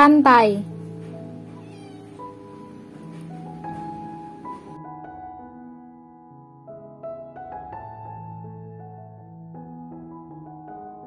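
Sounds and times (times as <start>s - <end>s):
soft keyboard music: 0.0s - 11.0s.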